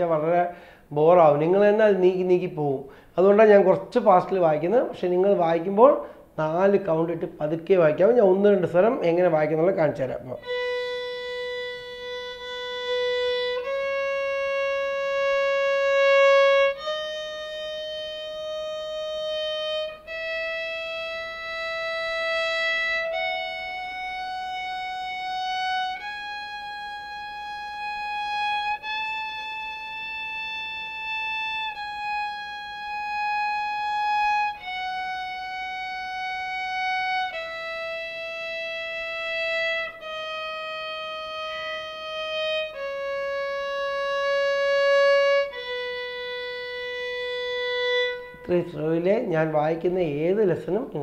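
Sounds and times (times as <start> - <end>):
violin long bowed note: 10.2 - 51.0.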